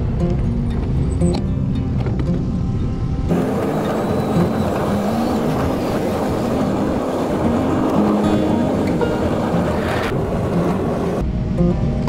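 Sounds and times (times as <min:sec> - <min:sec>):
road traffic: 0:00.0 - 0:11.5
guitar music: 0:00.0 - 0:12.0
wind noise: 0:00.0 - 0:12.0.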